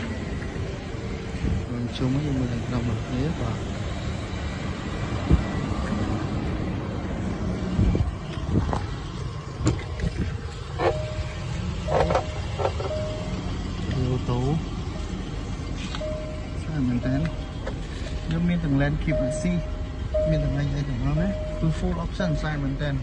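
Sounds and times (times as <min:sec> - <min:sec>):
low outdoor rumble: 0:00.0 - 0:23.0
car door clicks and knocks: 0:11.9 - 0:13.0.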